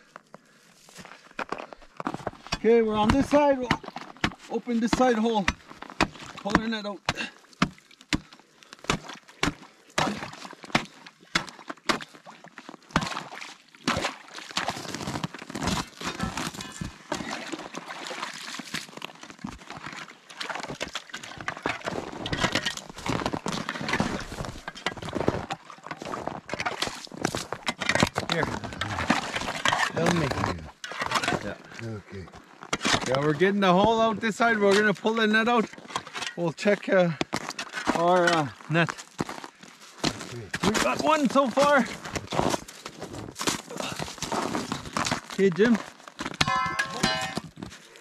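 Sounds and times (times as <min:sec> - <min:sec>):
ice chunks knocking and crackling: 0:00.9 - 0:31.6, 0:32.3 - 0:47.9
water sloshing: 0:02.4 - 0:31.5, 0:46.1 - 0:47.6
ice chisel chopping ice: 0:02.6 - 0:12.2.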